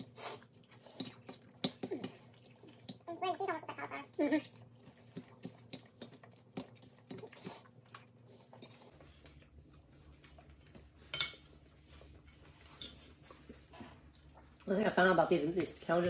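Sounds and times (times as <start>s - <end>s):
low steady hum: 0.0s - 16.0s
forks clinking on ceramic plates: 11.1s - 11.5s.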